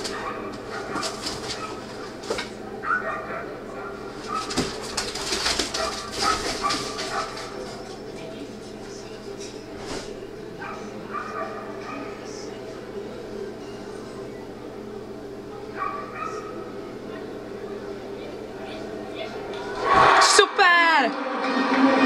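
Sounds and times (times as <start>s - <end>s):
dog barking: 0.0s - 7.9s, 10.6s - 12.5s, 15.7s - 16.8s
voices: 0.0s - 21.2s
arena background noise: 0.0s - 22.0s.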